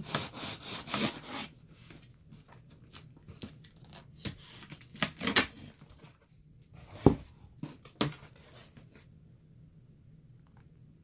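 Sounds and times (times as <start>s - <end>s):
cardboard rustling: 0.0s - 9.1s
cardboard scraping: 6.8s - 9.1s.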